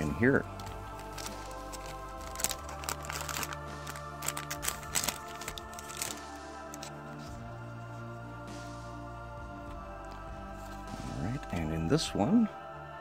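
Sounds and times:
foil wrapper crinkling and tearing: 0.0s - 7.2s
background music: 0.0s - 13.0s.

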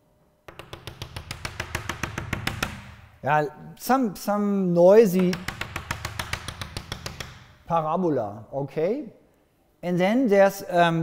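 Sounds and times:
chalk tapping on blackboard: 0.5s - 3.1s, 5.2s - 7.6s.

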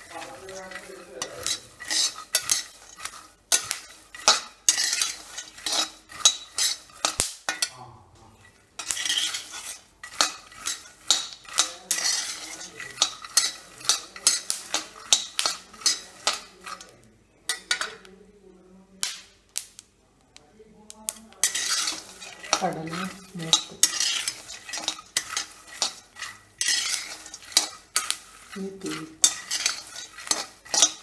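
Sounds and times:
metal spatula scraping pan: 0.0s - 7.7s, 8.3s - 18.1s, 21.1s - 31.0s
peanuts rattling: 0.0s - 7.7s, 8.4s - 17.0s, 20.9s - 31.0s.

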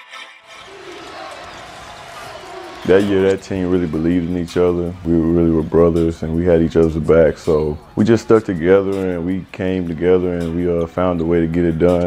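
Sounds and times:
crowd hubbub in arena: 0.5s - 12.0s.

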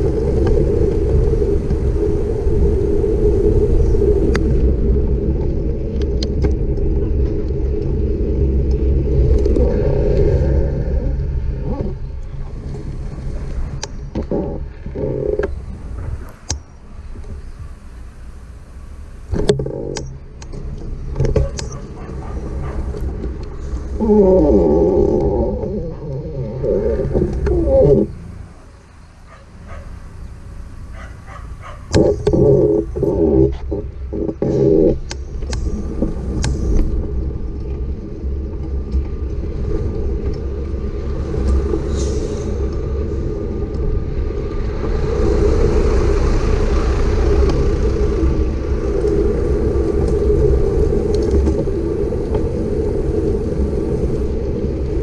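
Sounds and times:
steady hum: 0.0s - 5.7s, 45.0s - 55.0s
bicycle road noise: 0.0s - 55.0s
wind rumble: 0.0s - 55.0s.

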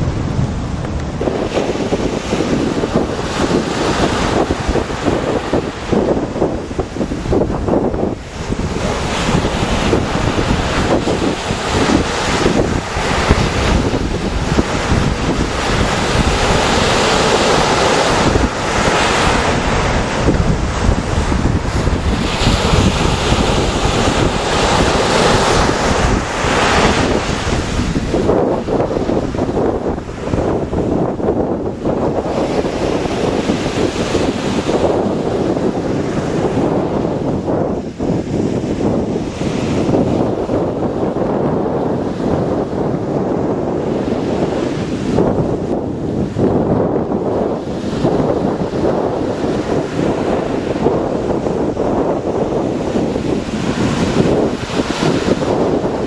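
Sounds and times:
surf breaking on shore: 0.0s - 56.0s
wind buffeting microphone: 0.0s - 56.0s.

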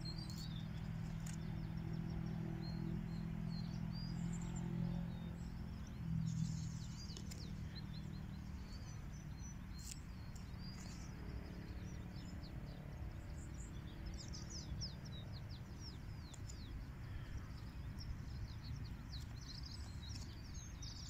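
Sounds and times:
low background rumble: 0.0s - 21.0s
small birds chirping: 0.0s - 21.0s.

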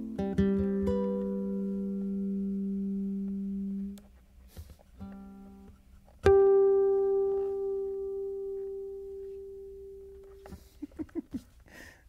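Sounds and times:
electric ukulele chord ringing: 0.0s - 4.0s, 5.0s - 10.5s.

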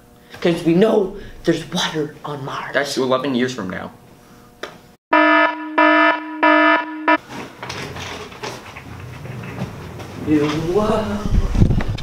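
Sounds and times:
harsh electronic buzzer: 5.1s - 7.2s.

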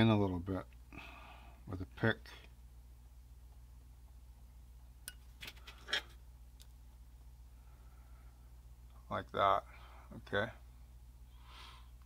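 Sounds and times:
metal pick tapping resin part: 5.0s - 5.6s.

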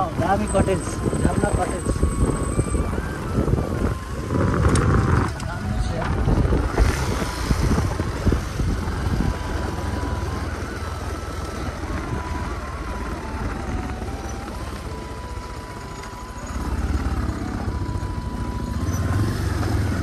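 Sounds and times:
motorcycle engine rumbling: 0.0s - 20.0s
wind buffeting microphone: 0.0s - 20.0s.

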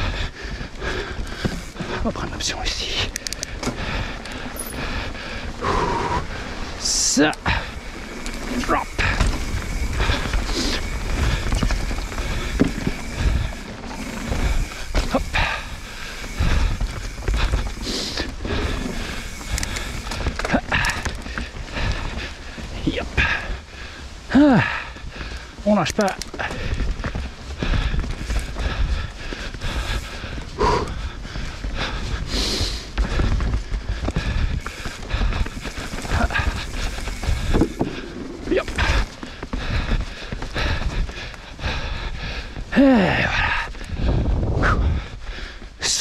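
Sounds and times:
bike knocking and rattling: 0.0s - 45.1s
bike tyres rumbling over boardwalk: 0.0s - 46.0s.

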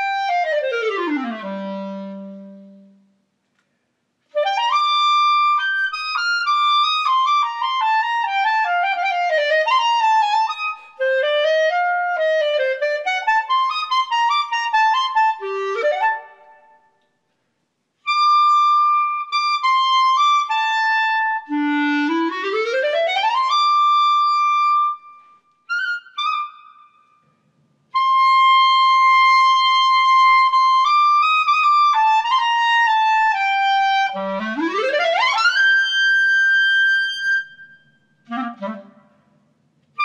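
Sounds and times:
solo clarinet: 0.0s - 3.3s, 4.3s - 17.1s, 18.0s - 27.3s, 27.9s - 40.0s.

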